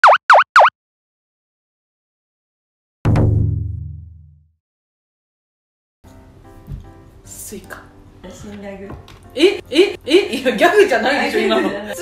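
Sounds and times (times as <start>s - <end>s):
cartoon bloop sound effects: 0.0s - 0.7s.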